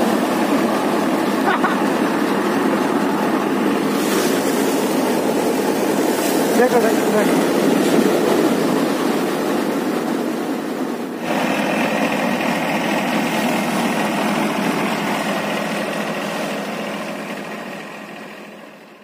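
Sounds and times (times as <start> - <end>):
thresher running: 0.0 - 19.0.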